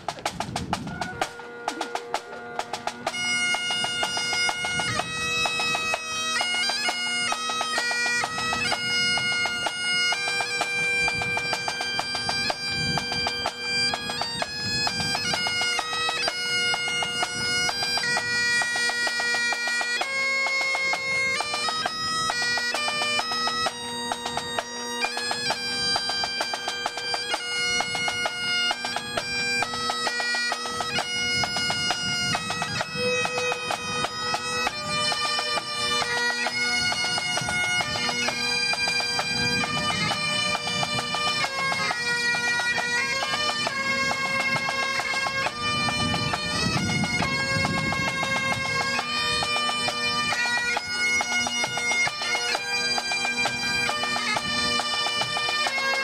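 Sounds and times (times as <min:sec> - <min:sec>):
drum beats: 0:00.0 - 0:05.8
bagpipes playing: 0:00.0 - 0:56.0.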